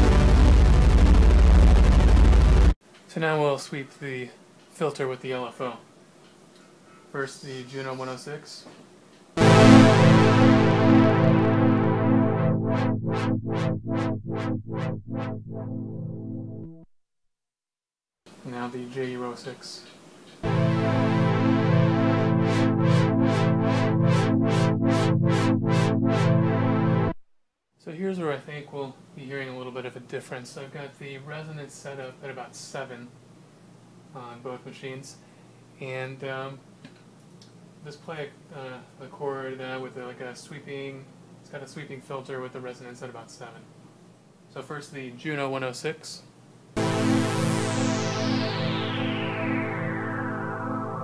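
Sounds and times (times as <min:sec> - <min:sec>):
synthesizer holding a low note: 0:00.0 - 0:02.8, 0:09.4 - 0:16.9, 0:20.4 - 0:27.2, 0:46.8 - 0:51.0.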